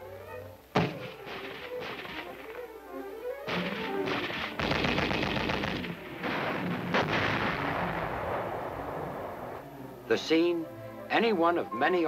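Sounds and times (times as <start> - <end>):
machine-gun fire: 0.8 - 2.2, 3.5 - 8.5
heavy bang: 0.8 - 2.4, 3.5 - 9.5.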